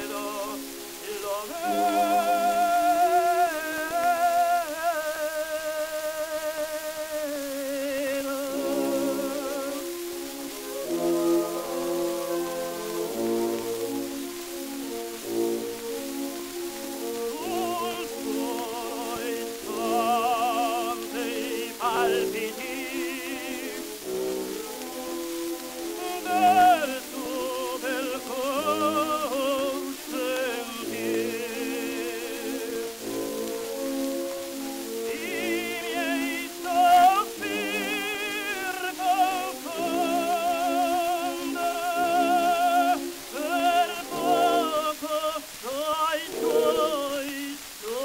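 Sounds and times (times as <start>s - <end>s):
orchestra playing: 0.0s - 47.4s
record surface hiss: 0.0s - 48.0s
tenor singing: 0.0s - 48.0s.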